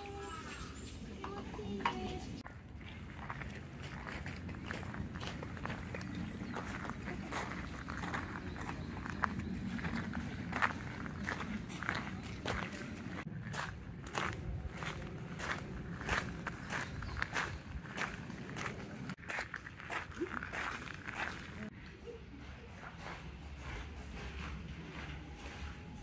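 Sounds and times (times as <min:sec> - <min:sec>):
footsteps crunching on gravel: 0:02.4 - 0:21.7.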